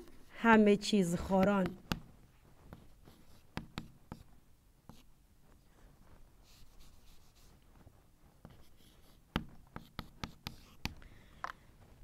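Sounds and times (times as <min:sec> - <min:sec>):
chalk tapping: 0:01.2 - 0:05.1, 0:06.4 - 0:07.6, 0:08.4 - 0:11.0
chalk scratching on blackboard: 0:02.6 - 0:04.3, 0:04.9 - 0:05.1, 0:06.4 - 0:11.0.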